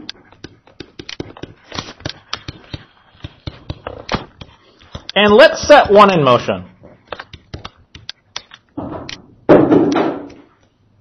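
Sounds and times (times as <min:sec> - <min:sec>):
stylus tapping on tablet screen: 0:00.2 - 0:06.0, 0:07.1 - 0:08.5.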